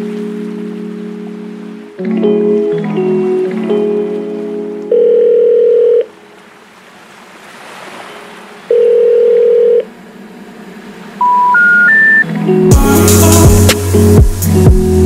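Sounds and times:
background music: 0:00.0 - 0:05.8, 0:11.2 - 0:15.0
telephone ringback beeps: 0:04.9 - 0:06.1, 0:08.7 - 0:09.9, 0:11.2 - 0:12.2
short beeps rising in pitch: 0:11.2 - 0:12.3.

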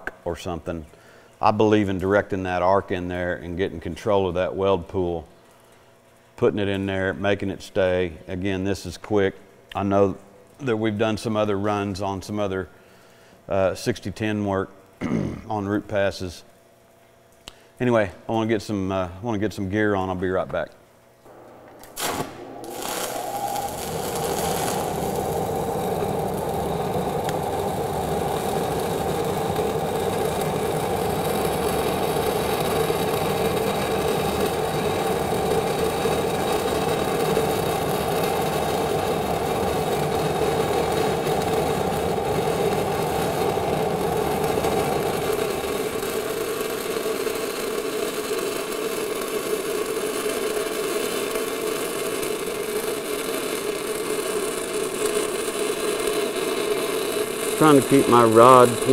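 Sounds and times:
welding arc crackling: 0:21.2 - 0:58.9.

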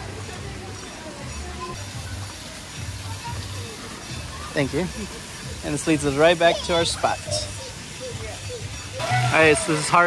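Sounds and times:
background music: 0:00.0 - 0:10.0
faint distant voices: 0:00.0 - 0:10.0.

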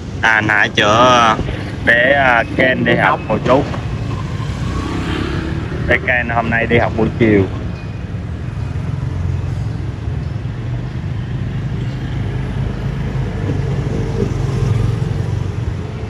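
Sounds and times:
low traffic rumble: 0:00.0 - 0:16.0.

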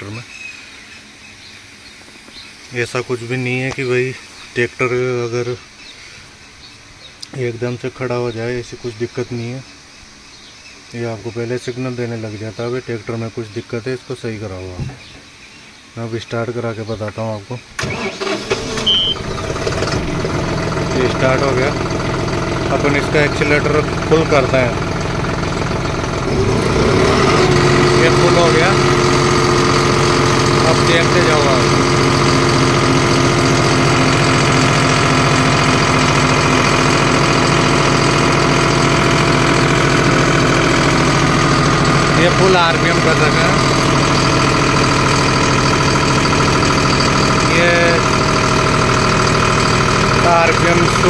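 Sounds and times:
diesel tractor engine starting: 0:17.8 - 0:51.0
short high beep: 0:18.8 - 0:19.3.

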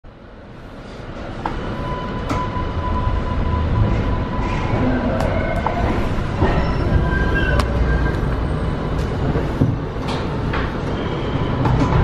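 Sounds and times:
subway train rumble: 0:00.1 - 0:12.0.

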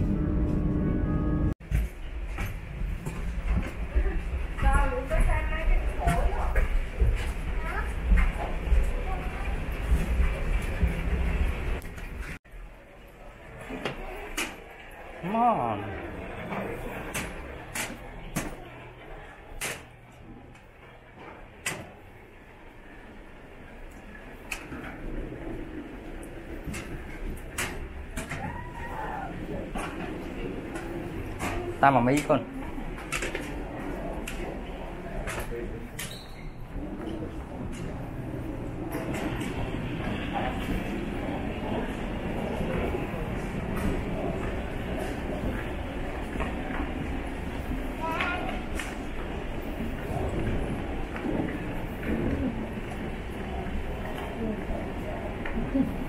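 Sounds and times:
suitcases rolling on carpet: 0:01.6 - 0:15.2, 0:16.0 - 0:56.0.

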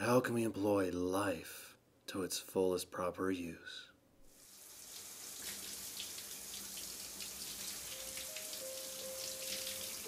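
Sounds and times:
shower head spraying water: 0:04.4 - 0:10.0.

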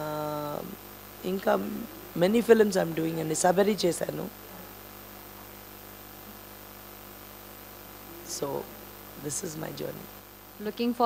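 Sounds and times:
electrical hum with hiss: 0:00.0 - 0:11.0.

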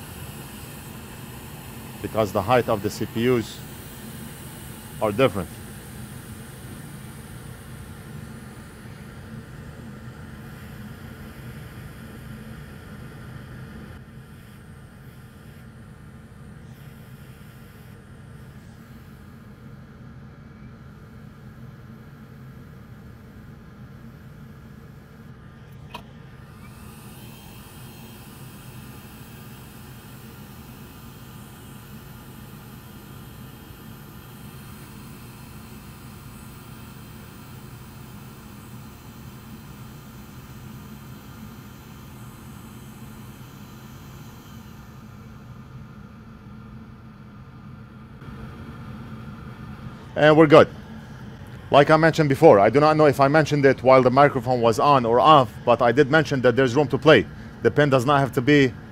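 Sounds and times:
hot air station blowing: 0:00.0 - 0:58.9.

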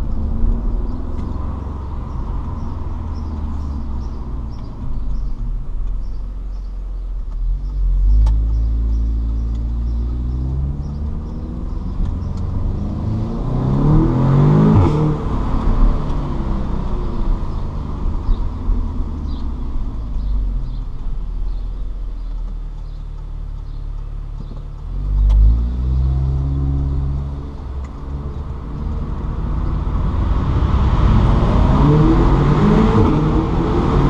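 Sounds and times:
car engine revving: 0:00.0 - 0:23.0, 0:23.6 - 0:34.0.

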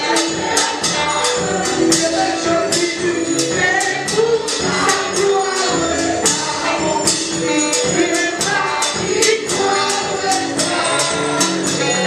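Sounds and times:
choir singing gospel song: 0:00.0 - 0:12.0
drum kit and percussion beat: 0:00.0 - 0:12.0.

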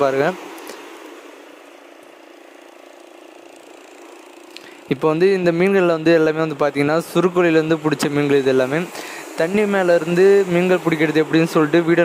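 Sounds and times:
outboard motor humming: 0:00.0 - 0:12.0.

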